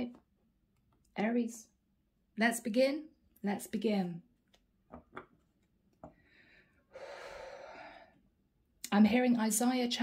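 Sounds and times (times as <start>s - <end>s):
faint long breath: 6.2s - 8.2s.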